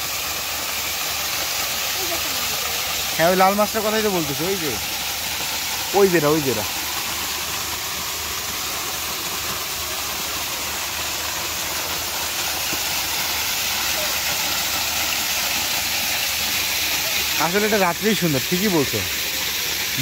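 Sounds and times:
waterfall splashing into pond: 0:00.0 - 0:20.0.

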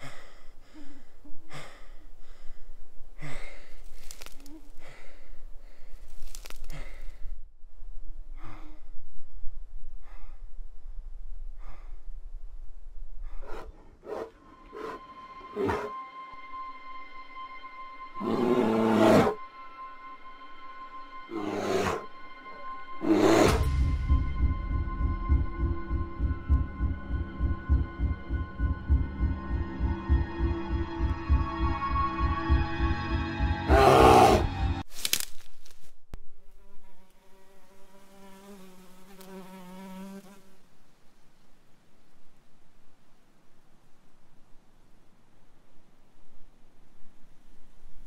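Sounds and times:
eerie music drone: 0:14.4 - 0:34.8
low throbbing pulse: 0:19.4 - 0:33.8
fly buzzing: 0:36.4 - 0:40.7.

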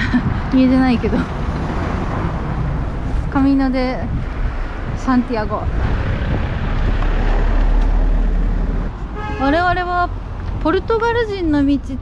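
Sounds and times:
vehicle passing close by: 0:00.2 - 0:10.4.

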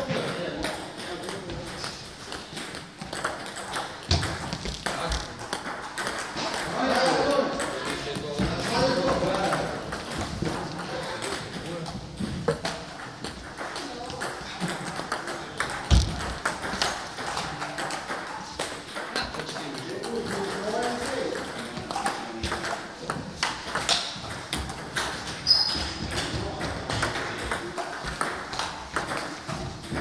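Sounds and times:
table tennis ball clicking: 0:00.2 - 0:06.8.

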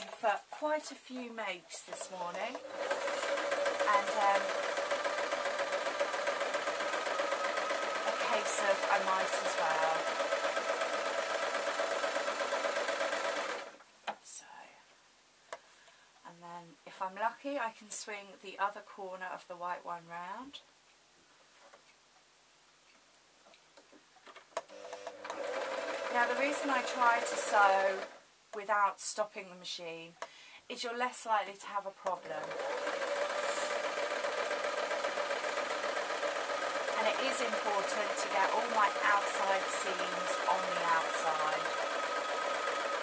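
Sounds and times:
electric sewing machine running: 0:00.0 - 0:00.2, 0:01.9 - 0:13.8, 0:24.7 - 0:28.2, 0:32.2 - 0:43.0.

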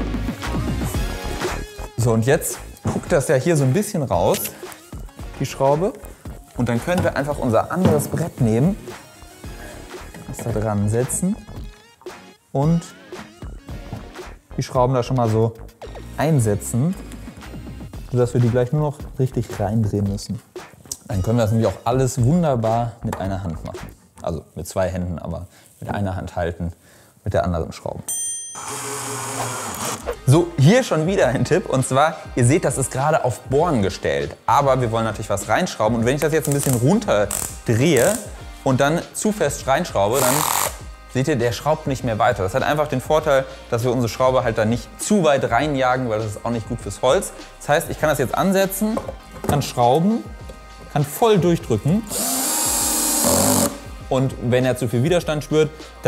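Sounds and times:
bright ding: 0:28.1 - 0:29.0
cordless drill whirring: 0:28.6 - 0:30.2, 0:40.2 - 0:40.8, 0:52.1 - 0:53.8
drill torque clutch slipping: 0:40.2 - 0:40.8.

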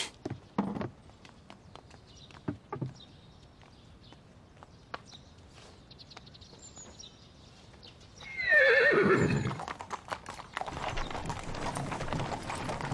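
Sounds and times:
horse hooves clopping: 0:00.1 - 0:12.9
horse whinnying: 0:08.2 - 0:09.8.

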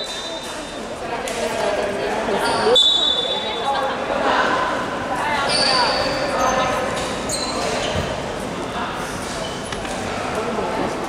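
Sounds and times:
voices echoing in sports hall: 0:00.0 - 0:11.0
sneakers squeaking on hardwood: 0:05.5 - 0:08.2.

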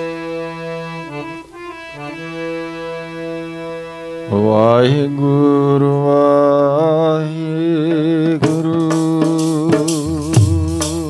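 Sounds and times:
harmonium chord: 0:00.0 - 0:06.1, 0:07.8 - 0:11.0
man singing devotional song: 0:04.2 - 0:11.0.

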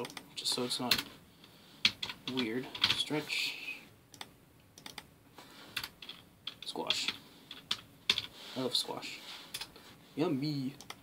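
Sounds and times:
computer keyboard typing: 0:01.8 - 0:03.0, 0:04.1 - 0:05.1, 0:05.8 - 0:08.3.

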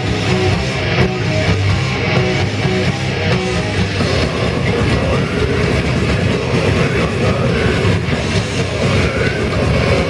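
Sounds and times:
death metal band playing: 0:00.0 - 0:10.0.

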